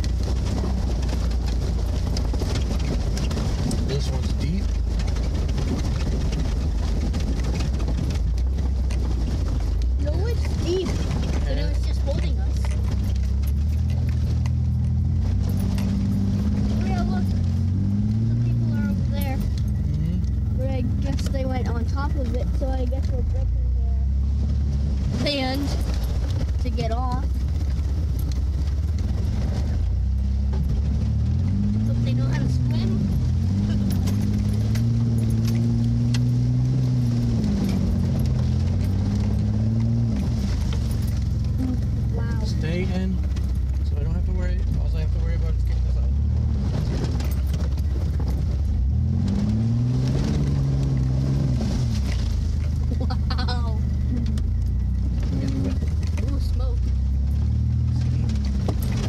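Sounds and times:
vehicle engine droning: 0:00.0 - 0:59.0.

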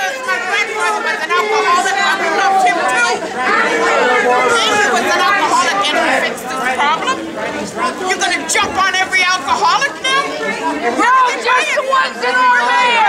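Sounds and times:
people talking over one another: 0:00.0 - 0:13.0.

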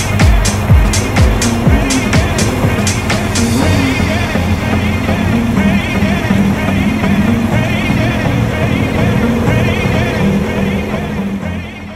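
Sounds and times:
music with steady pulse: 0:00.0 - 0:11.9.

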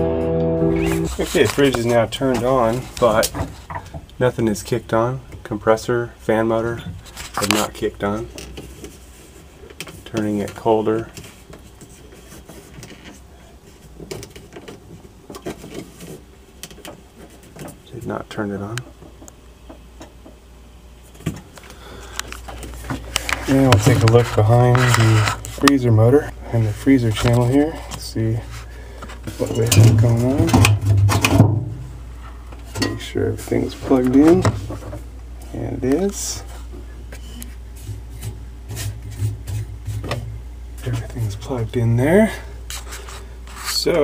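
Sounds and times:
low steady hum: 0:00.0 - 0:44.0.

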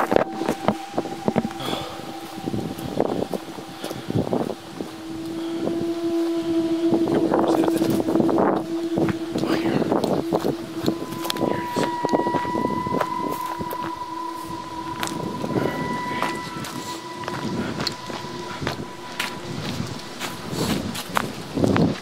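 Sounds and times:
higher shifting tones: 0:00.0 - 0:22.0
low steady drone: 0:00.0 - 0:22.0
wind on microphone: 0:00.0 - 0:22.0.

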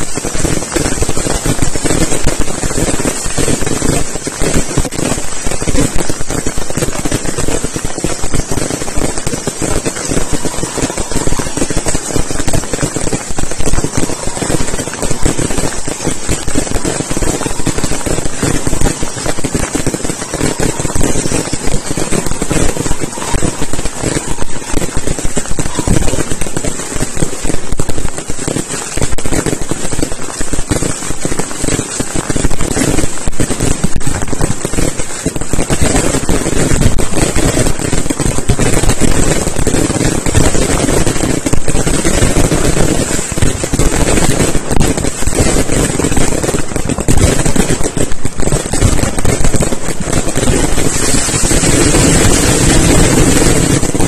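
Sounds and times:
fireworks bursting: 0:00.0 - 0:54.0.

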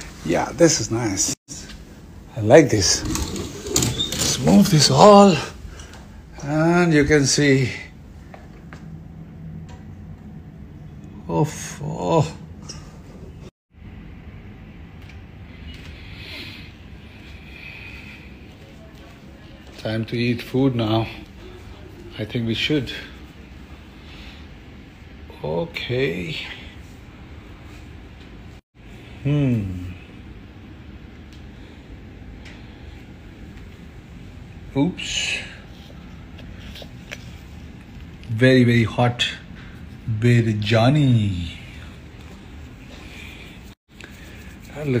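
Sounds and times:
low rumble of background ambience: 0:00.0 - 0:45.0
room noise: 0:00.0 - 0:45.0.

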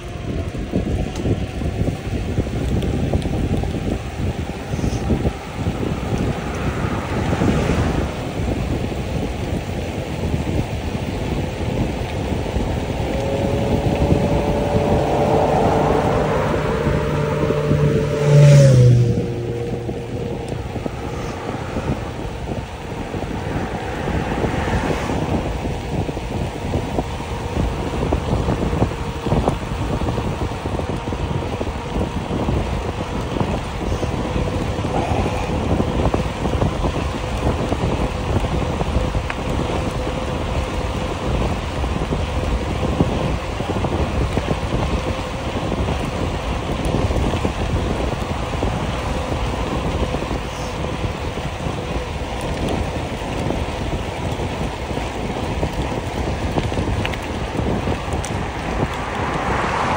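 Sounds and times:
wind rushing over microphone: 0:00.0 - 0:59.9
motor vehicle passing: 0:00.3 - 0:59.9.

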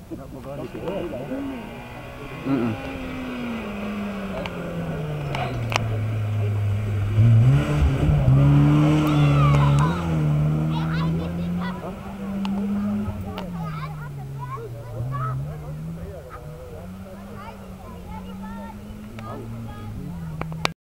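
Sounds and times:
rally car engine revving: 0:00.0 - 0:20.8.

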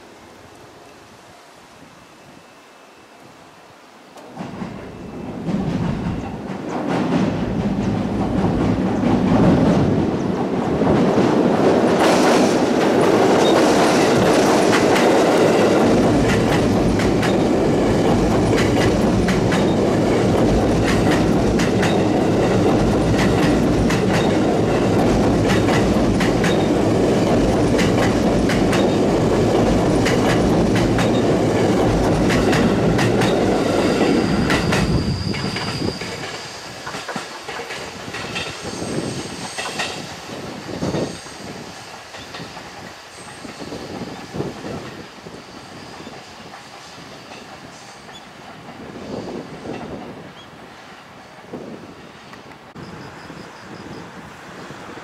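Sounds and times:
train passing at speed: 0:00.0 - 0:55.0
wheels clacking over rail joints: 0:04.2 - 0:38.6
high wheel squeal: 0:33.3 - 0:37.2, 0:37.9 - 0:48.3.

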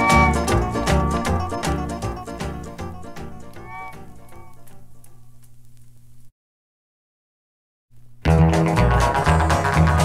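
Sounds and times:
country band instrumental: 0:00.0 - 0:04.5, 0:08.3 - 0:10.0
bending sliding note: 0:00.0 - 0:04.6.

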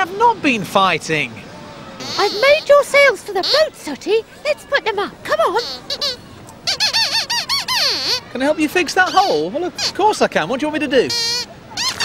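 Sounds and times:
puppet squeaker voice: 0:02.0 - 0:03.9, 0:05.4 - 0:10.1, 0:11.0 - 0:12.0.

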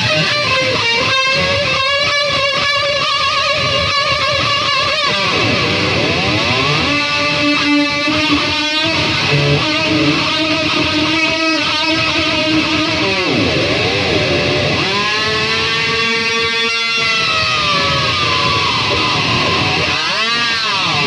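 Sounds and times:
distorted electric guitar lead: 0:00.0 - 0:21.0.

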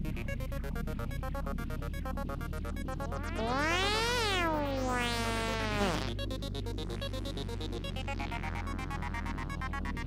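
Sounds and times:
buzzing pulsed synth: 0:02.5 - 0:08.5
synth tone gliding downward: 0:03.0 - 0:06.2.

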